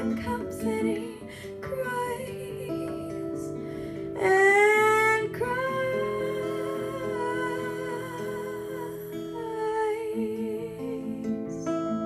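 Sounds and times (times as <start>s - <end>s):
acoustic guitar: 0.0s - 12.0s
woman singing wordless notes: 0.0s - 12.0s.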